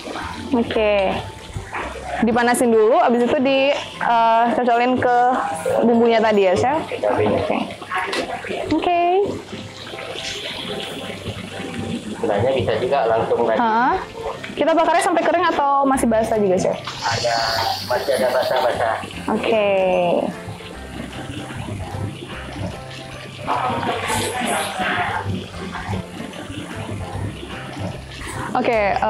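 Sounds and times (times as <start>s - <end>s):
background music: 0.0s - 29.0s
chicken sizzling on a hot pan: 16.9s - 18.9s.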